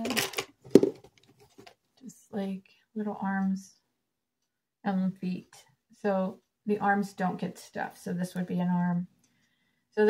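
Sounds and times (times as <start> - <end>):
rustling handling noise: 0.0 - 1.8.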